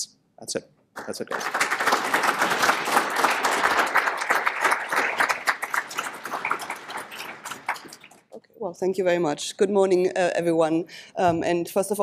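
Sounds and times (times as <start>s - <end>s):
audience applauding: 1.0s - 8.3s.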